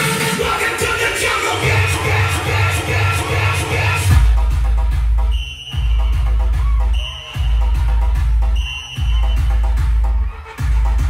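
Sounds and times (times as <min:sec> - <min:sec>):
bass-heavy electronic dance music: 0:00.0 - 0:11.0.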